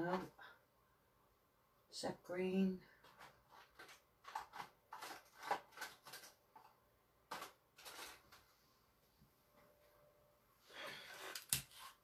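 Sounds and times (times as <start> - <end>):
plastic tubes clicking and rattling: 3.0 - 8.5.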